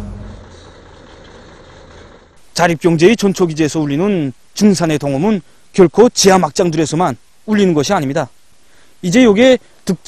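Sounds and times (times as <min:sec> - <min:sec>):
faint even rumble: 0:00.0 - 0:02.5.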